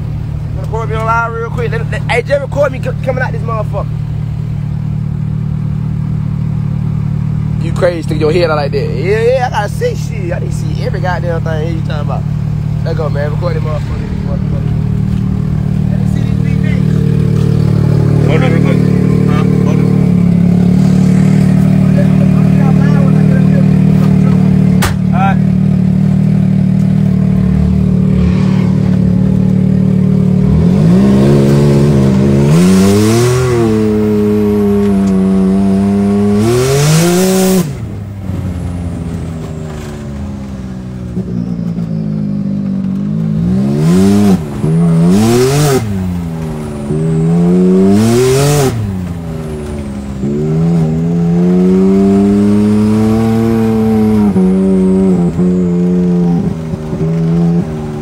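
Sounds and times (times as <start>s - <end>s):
utility vehicle engine revving: 0.0s - 58.0s.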